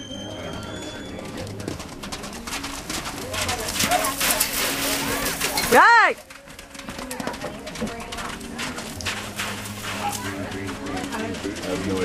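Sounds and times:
spectators' voices: 0.0s - 12.0s
horse galloping on dirt: 0.2s - 12.0s.

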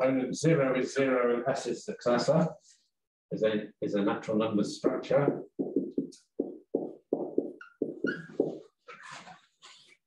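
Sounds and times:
marker squeaking on whiteboard: 5.3s - 9.9s.

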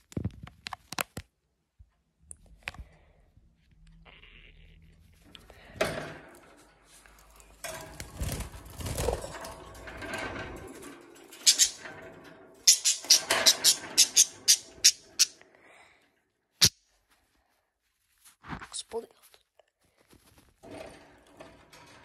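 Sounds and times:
rustling at wire birdcage: 4.8s - 15.4s
budgerigars squawking: 11.5s - 11.8s, 12.7s - 15.4s.

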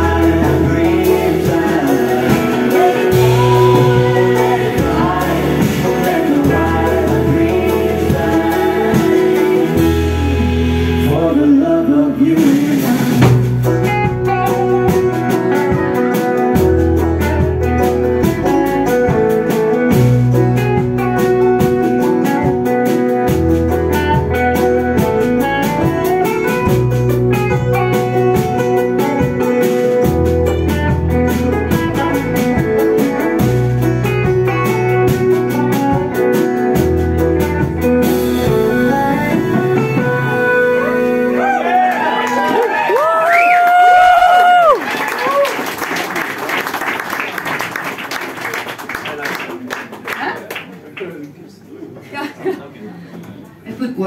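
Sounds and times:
banjo picking: 0.0s - 11.1s, 13.2s - 41.4s
drum kit beat: 0.0s - 11.4s, 12.2s - 44.8s
bass guitar: 0.0s - 45.5s
electric guitar: 0.0s - 45.5s
live band playing: 0.0s - 48.8s.

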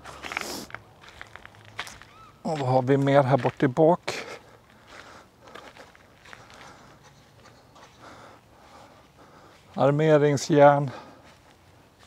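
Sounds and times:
footsteps on grass: 0.0s - 12.0s.

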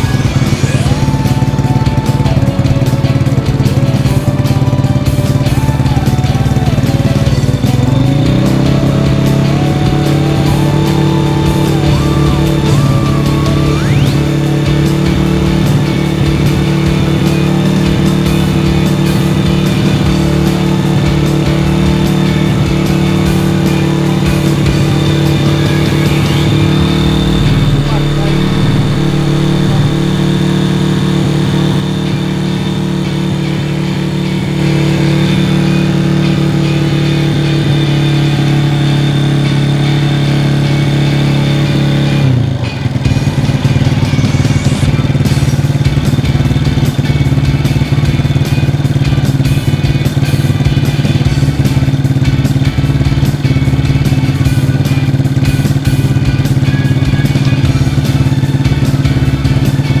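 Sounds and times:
motorcycle engine running: 0.0s - 60.0s.

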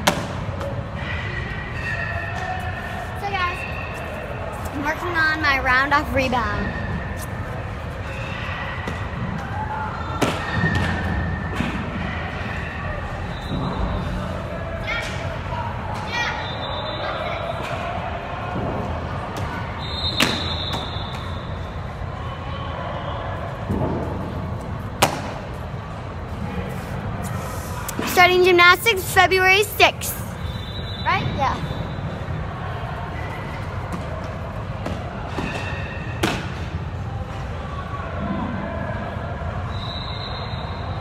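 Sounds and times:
distant voices and shouts: 0.0s - 41.0s
echoing sports hall noise: 0.0s - 41.0s.

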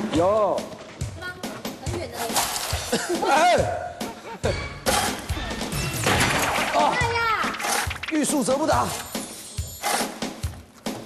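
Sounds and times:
coal shovel scraping: 2.0s - 3.0s, 6.7s - 10.4s.

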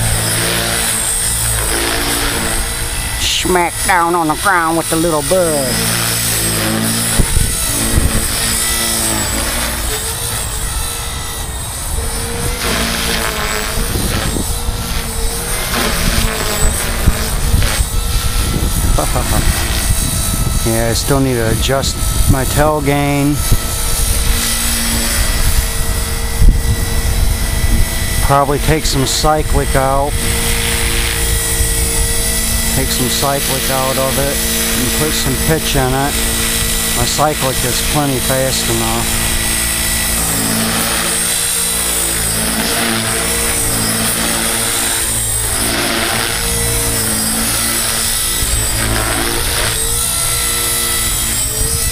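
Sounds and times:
rc helicopter rotor whine: 0.0s - 51.9s
person laughing: 18.9s - 19.9s.

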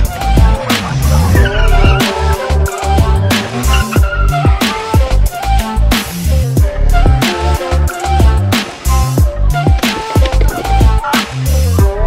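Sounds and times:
motorcycle engine running: 0.0s - 5.7s
tyres skidding on concrete: 0.0s - 6.1s
electronic music with bass beat: 0.0s - 12.0s.

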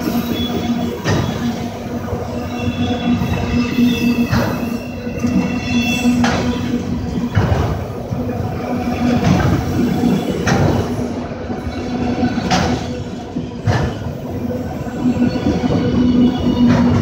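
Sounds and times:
steel wheels rumbling on rail: 0.0s - 17.0s.

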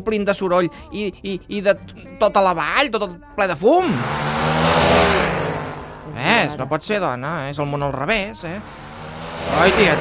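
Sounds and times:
motor vehicle passing by: 3.8s - 6.8s, 8.4s - 10.0s.

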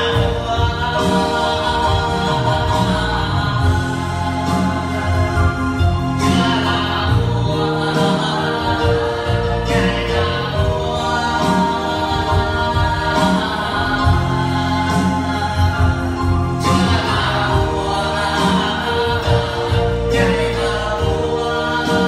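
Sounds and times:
electronic keyboard chords: 0.0s - 22.0s
man singing into microphone: 0.0s - 22.0s
steady bass: 0.0s - 22.0s.

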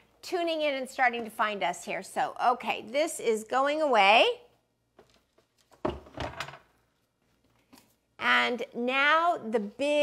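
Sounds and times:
knocks and clatter of kitchen item: 5.8s - 6.7s.

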